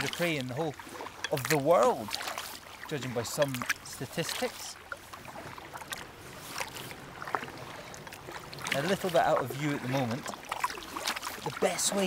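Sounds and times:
paddle splashing through water: 0:00.0 - 0:12.0.

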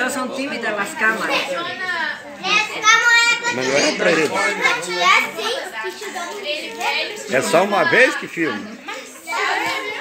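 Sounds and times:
children's voices: 0:00.0 - 0:10.0
several voices talking: 0:00.0 - 0:10.0.

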